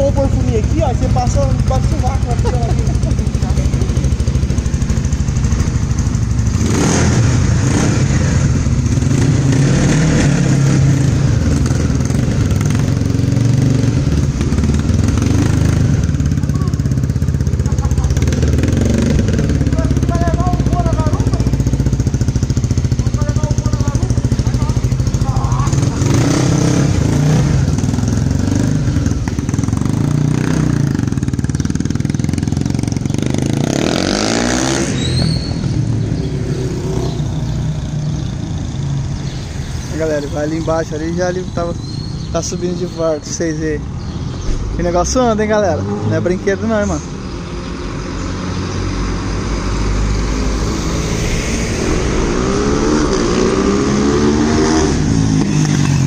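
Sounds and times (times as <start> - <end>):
motorcycle engine running: 0.0 - 42.6.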